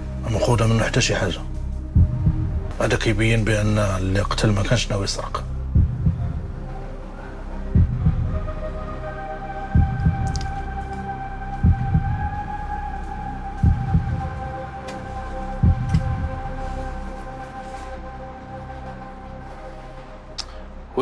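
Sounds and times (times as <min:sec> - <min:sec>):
low heartbeat-like pulse: 0:01.6 - 0:02.8, 0:05.4 - 0:17.2.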